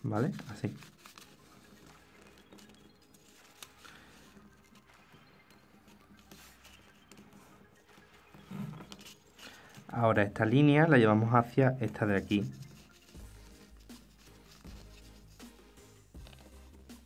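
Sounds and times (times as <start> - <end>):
paper rustling and creasing: 0.0 - 15.5, 16.2 - 16.8.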